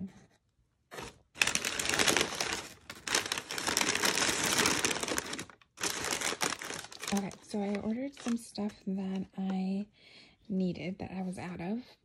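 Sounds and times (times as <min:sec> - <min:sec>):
packing paper crinkling: 0:00.9 - 0:09.4.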